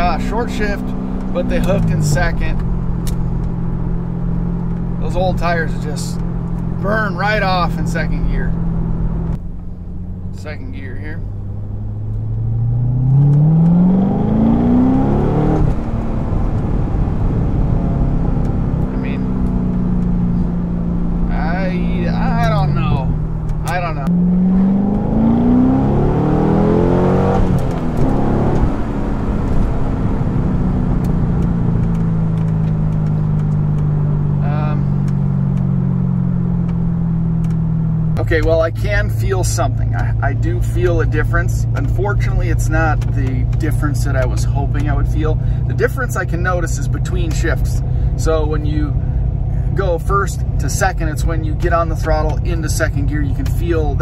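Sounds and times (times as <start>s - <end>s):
car engine revving under full throttle: 0.0s - 54.0s.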